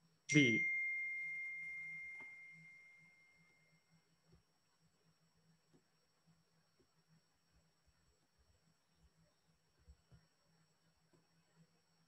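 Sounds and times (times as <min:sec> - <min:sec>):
high ringing bell-like tone: 0:00.3 - 0:04.0.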